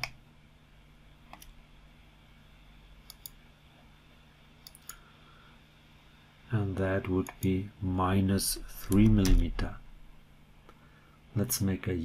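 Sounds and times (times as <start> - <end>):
faint steady hum: 0.0 - 12.0
computer mouse clicking: 1.3 - 1.6, 3.0 - 3.4, 4.6 - 5.0.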